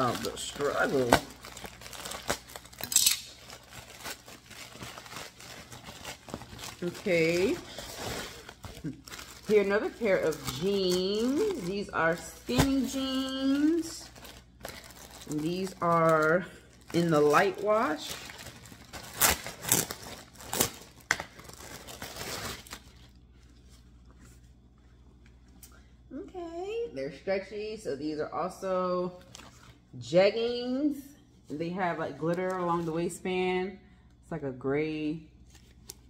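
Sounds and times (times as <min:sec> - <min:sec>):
clothing packaging crinkling: 0:00.0 - 0:24.0.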